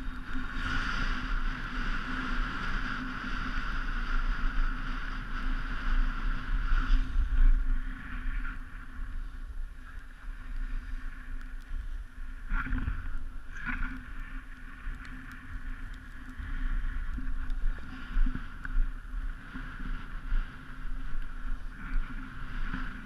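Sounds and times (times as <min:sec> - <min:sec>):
skis sliding on snow: 0:00.0 - 0:23.0
wind rumbling on microphone: 0:00.0 - 0:23.0.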